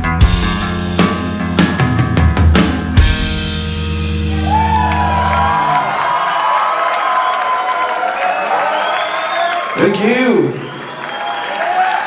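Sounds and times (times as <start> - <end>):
rock band final chord: 0.0 - 6.0
crowd cheering and whooping: 4.1 - 12.0.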